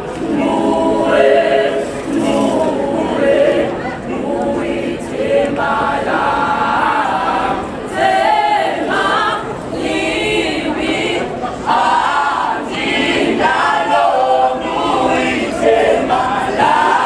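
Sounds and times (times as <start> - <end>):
a cappella choir singing: 0.0 - 17.0.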